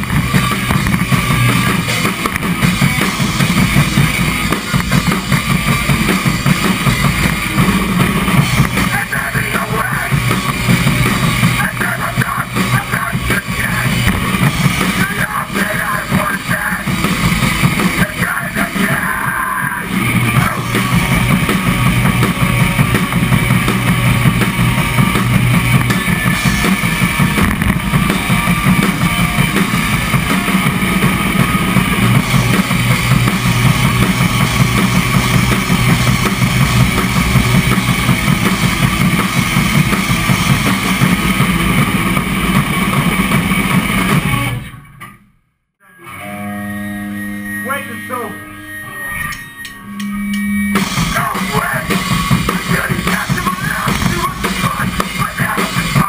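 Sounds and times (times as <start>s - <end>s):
hardcore band playing live: 0.0s - 44.8s, 46.0s - 56.0s
held guitar notes ringing: 45.8s - 52.6s.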